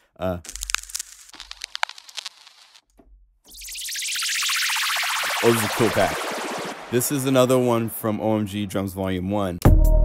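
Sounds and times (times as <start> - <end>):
vinyl crackles and pops: 0.5 - 2.8
low hum: 3.5 - 8.0
hissing synth noise: 3.5 - 8.1.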